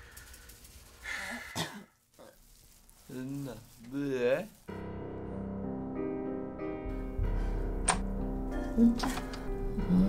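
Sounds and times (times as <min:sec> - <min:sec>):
faint breath: 0:00.0 - 0:01.6.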